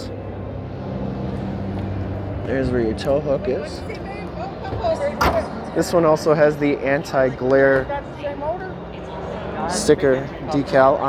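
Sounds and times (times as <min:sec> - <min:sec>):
constant low hum: 0:00.0 - 0:11.0.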